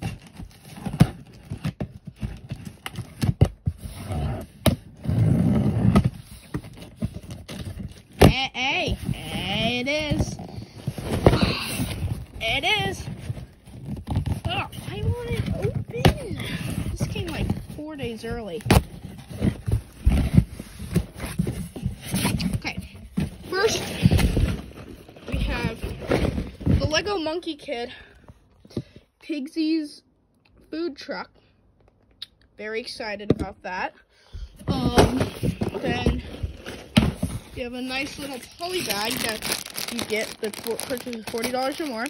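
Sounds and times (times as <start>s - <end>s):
cardboard box handled: 0.0s - 27.1s, 34.6s - 42.0s
cardboard scraping: 0.0s - 27.4s, 34.6s - 42.0s.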